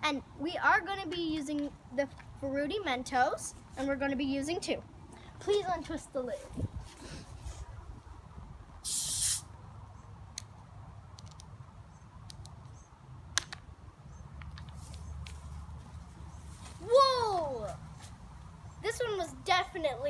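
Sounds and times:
soda foaming out rush: 8.8s - 9.4s
bottle cap hiss of gas: 8.8s - 9.5s.

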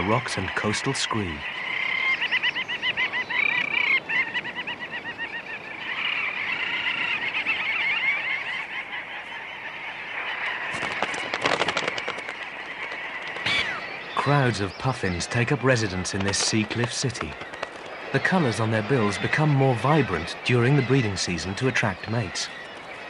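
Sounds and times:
seabirds chattering calls: 0.0s - 23.0s
crackling noise: 8.6s - 23.0s.

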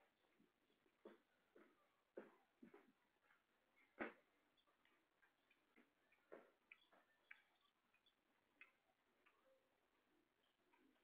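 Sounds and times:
faint ticks and clicks: 4.1s - 11.0s.

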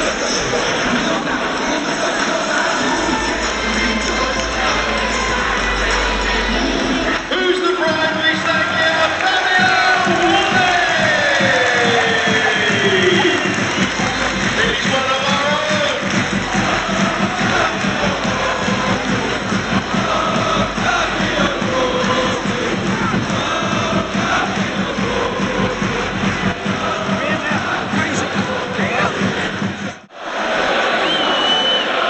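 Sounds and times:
music over stadium speakers: 0.0s - 32.0s
stadium crowd cheering and clapping: 0.0s - 32.0s.

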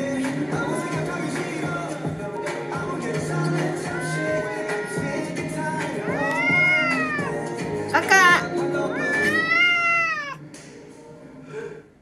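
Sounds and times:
background pop music: 0.0s - 12.0s
cat meowing: 6.0s - 7.5s, 8.9s - 10.4s
cat chirp: 6.1s - 7.4s, 9.0s - 10.4s.

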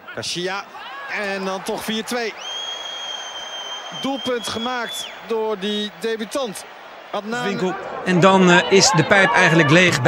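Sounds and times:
stadium crowd cheering: 0.0s - 10.0s
long high-pitched whistle: 2.4s - 5.1s.

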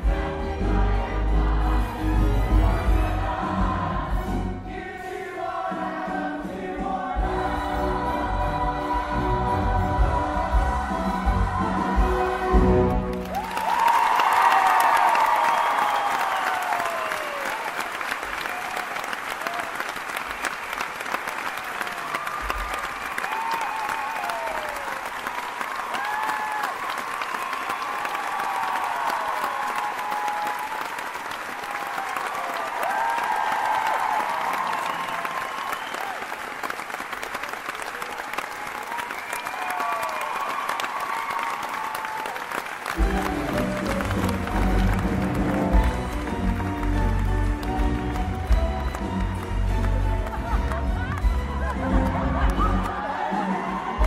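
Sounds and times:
music: 0.0s - 14.0s, 42.8s - 54.0s
audience applauding and cheering: 7.2s - 54.0s
high whoops: 13.3s - 19.8s, 21.8s - 31.0s, 31.6s - 36.4s, 38.4s - 42.6s.

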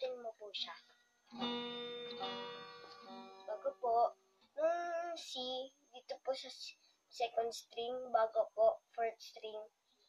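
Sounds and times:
acoustic guitar chord strummed: 1.3s - 4.0s.

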